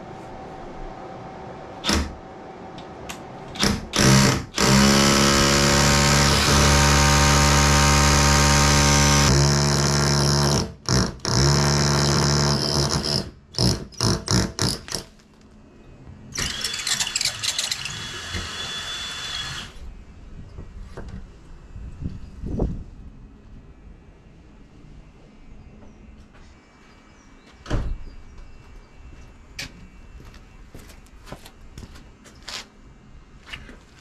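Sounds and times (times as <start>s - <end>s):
high drill whine: 3.6s - 10.6s, 16.3s - 19.8s
drill drilling into brick: 3.6s - 14.9s, 16.4s - 19.8s.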